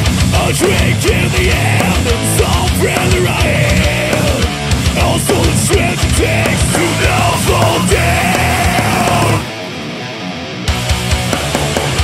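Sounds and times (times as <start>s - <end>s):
electric guitar playing alone: 0.0s - 12.0s
metal band playing: 0.0s - 12.0s.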